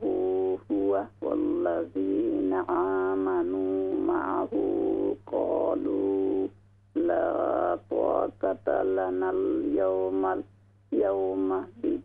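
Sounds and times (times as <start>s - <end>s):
melodic recitation over telephone: 0.0s - 12.0s.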